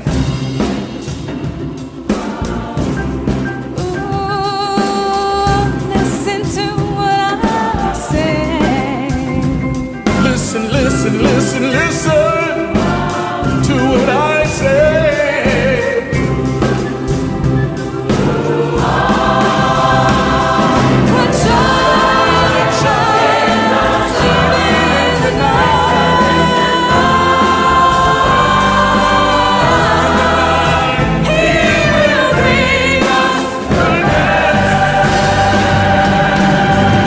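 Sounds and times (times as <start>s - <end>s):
instrumental accompaniment: 0.0s - 37.0s
choir singing: 1.9s - 4.2s, 10.2s - 37.0s.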